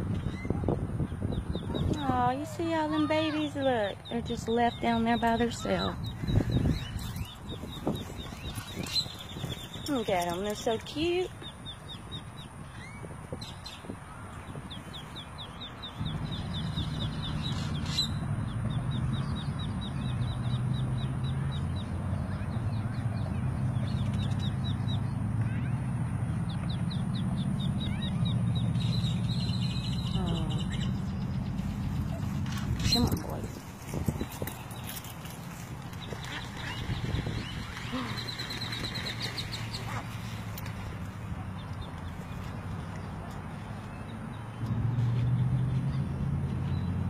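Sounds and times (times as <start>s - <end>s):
ducklings peeping: 0.1s - 25.7s, 26.4s - 35.0s, 35.9s - 40.3s
low steady rumble: 14.1s - 47.0s.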